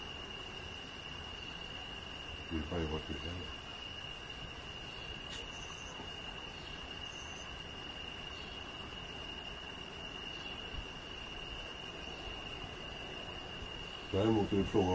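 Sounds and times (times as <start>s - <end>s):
crickets trilling: 0.0s - 14.9s
faint background hiss: 0.0s - 14.9s.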